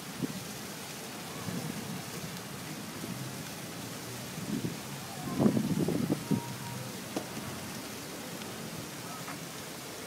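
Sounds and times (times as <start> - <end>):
fountain splashing into basin: 0.0 - 10.0.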